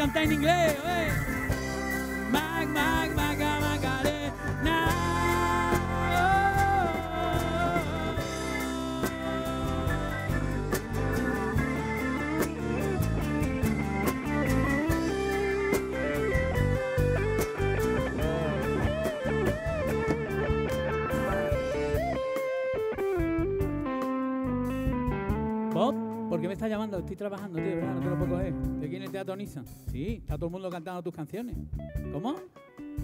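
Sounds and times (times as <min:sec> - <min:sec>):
gliding lead guitar lines: 0:00.0 - 0:26.6, 0:27.6 - 0:29.0
live band music with guitars: 0:00.0 - 0:33.0.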